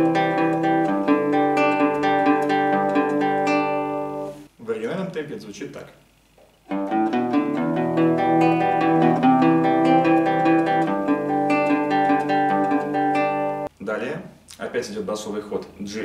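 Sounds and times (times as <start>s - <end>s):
fingerpicked nylon-string guitar: 0.0s - 4.5s, 6.7s - 13.7s.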